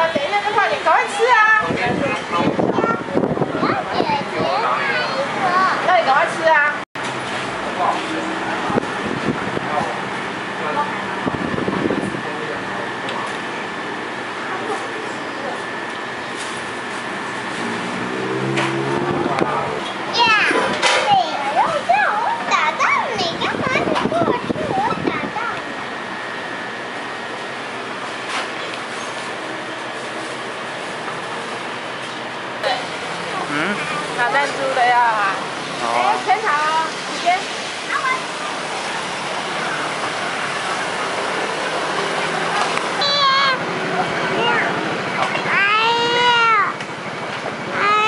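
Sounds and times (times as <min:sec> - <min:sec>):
eatery background noise: 0:31.1 - 0:48.0.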